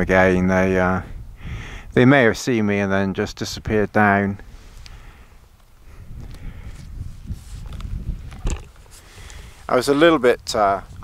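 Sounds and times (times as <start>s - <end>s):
wind buffeting microphone: 0.0s - 2.0s, 5.8s - 11.0s
camera handling noise: 7.5s - 9.4s.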